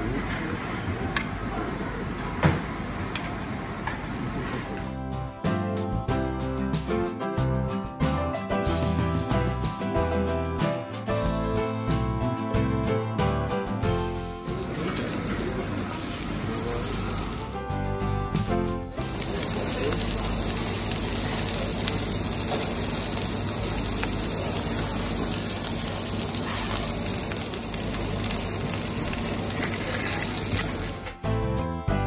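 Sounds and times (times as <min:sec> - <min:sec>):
meat sizzling on grill plate: 0:14.5 - 0:17.6, 0:19.0 - 0:31.2.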